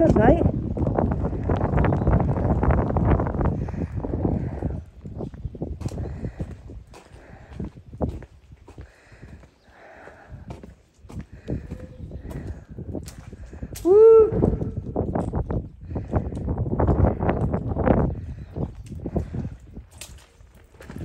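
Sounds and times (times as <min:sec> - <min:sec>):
footsteps crunching on wet gravel: 0:04.8 - 0:13.8, 0:19.1 - 0:21.0.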